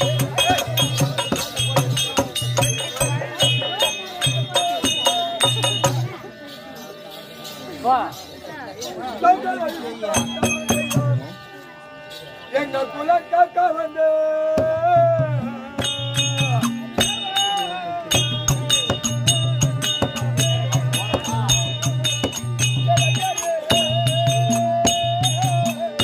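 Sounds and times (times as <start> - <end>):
steady drum beat: 0.0 - 6.3, 10.1 - 11.4, 14.6 - 26.0
wavering melody line: 0.0 - 26.0.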